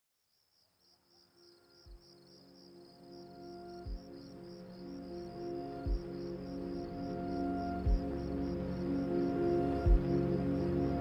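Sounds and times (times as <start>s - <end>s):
crickets chirping: 0.2s - 11.0s
soft steady music tones: 1.2s - 11.0s.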